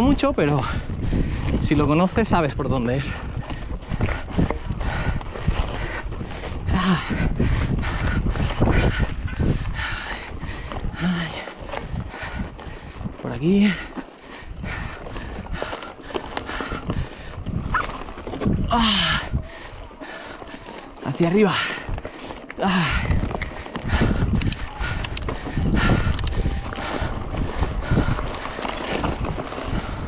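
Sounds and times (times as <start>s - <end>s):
bike knocking and rattling: 0.0s - 30.0s
wind rumble on microphone: 0.0s - 30.0s
tyres crunching on rocks: 10.4s - 25.6s, 26.3s - 30.0s.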